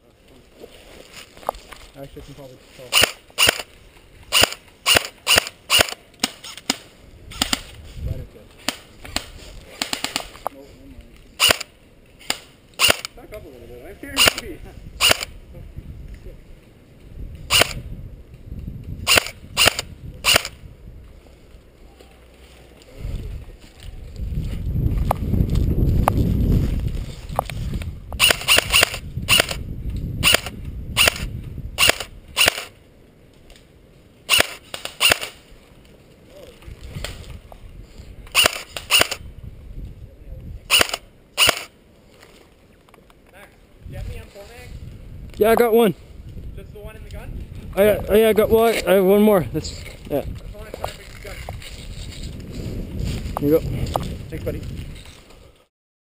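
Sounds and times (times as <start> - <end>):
airsoft rifle shots: 2.9 - 3.7, 4.3 - 7.7, 11.4 - 13.2, 14.1 - 15.3, 17.5 - 17.8, 19.0 - 20.6, 28.2 - 29.6, 30.2 - 32.7, 34.3 - 35.4, 38.3 - 39.2, 40.7 - 41.7.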